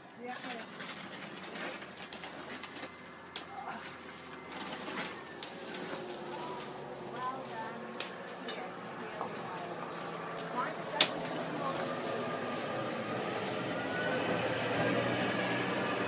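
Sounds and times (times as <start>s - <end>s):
leaves and branches rustling: 0.0s - 16.0s
wood snapping: 1.9s - 7.3s, 8.0s - 8.5s, 10.3s - 11.4s.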